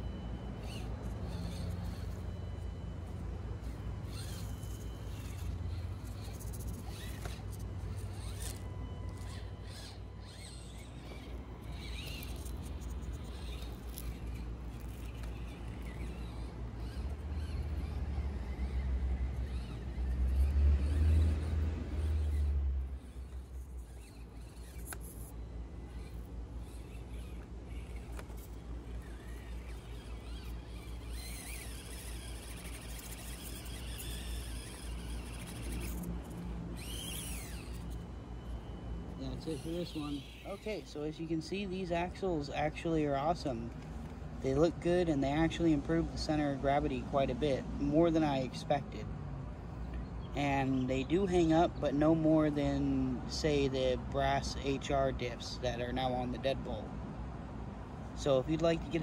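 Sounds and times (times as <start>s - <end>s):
small electric motor whirring: 0.0s - 56.9s, 57.8s - 59.0s.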